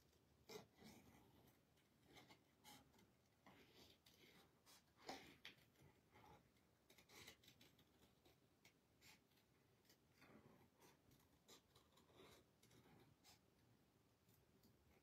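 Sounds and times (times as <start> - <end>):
scissors snipping paper: 2.0 - 13.2.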